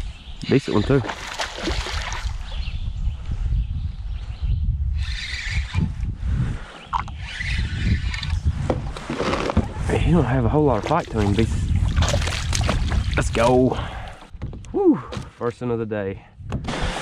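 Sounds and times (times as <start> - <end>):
fish splashing at the surface: 1.1 - 2.3
low rumble on microphone: 1.7 - 15.1.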